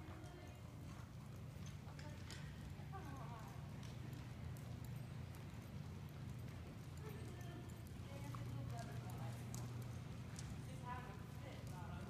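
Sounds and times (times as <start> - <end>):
horse hooves trotting on dirt: 0.0 - 12.0.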